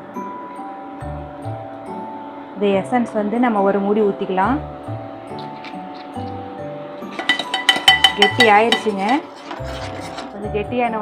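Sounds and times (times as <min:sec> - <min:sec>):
background music: 0:00.0 - 0:11.0
ladle clinking against steel pan: 0:07.1 - 0:10.2.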